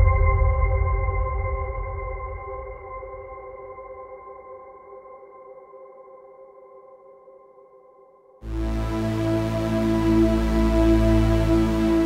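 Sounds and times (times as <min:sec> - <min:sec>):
held steady music chord: 0:08.4 - 0:12.0.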